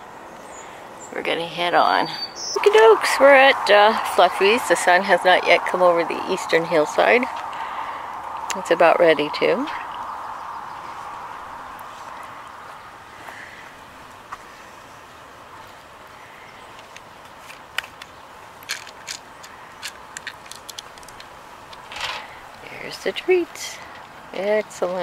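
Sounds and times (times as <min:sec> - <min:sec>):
faint steady rush: 0:00.0 - 0:25.0
treats clicking on concrete: 0:16.7 - 0:22.3.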